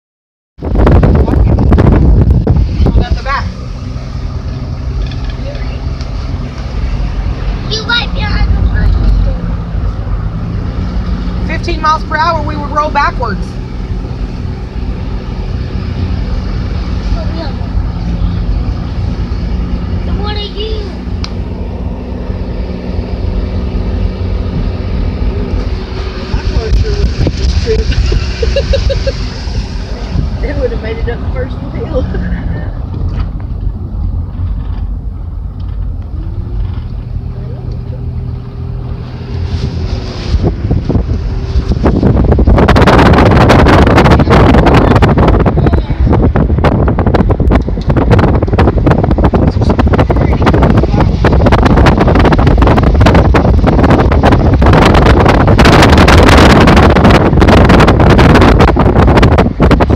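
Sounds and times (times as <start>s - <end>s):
car engine running: 0.6s - 59.9s
road noise: 0.6s - 59.9s.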